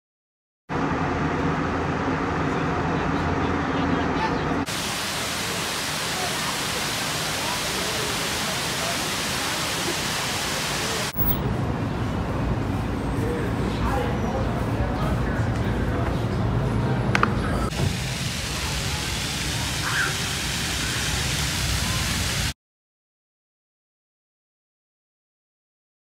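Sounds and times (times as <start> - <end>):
voices: 2.0 - 22.3
water rushing down fountain cascade: 4.6 - 11.4, 17.7 - 22.6.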